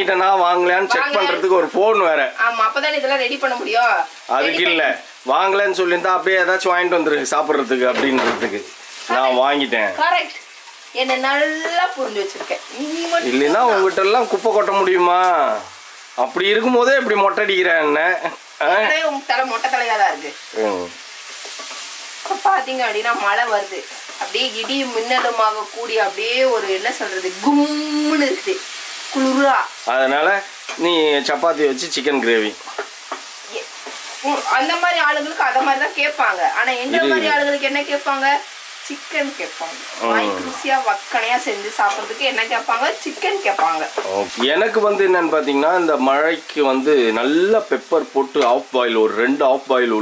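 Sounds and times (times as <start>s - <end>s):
food sizzling in a frying pan: 0.0s - 50.0s
spatula stirring in pan: 10.3s - 14.8s, 19.3s - 27.4s, 30.4s - 36.6s, 38.4s - 45.0s
woman talking: 34.2s - 44.0s.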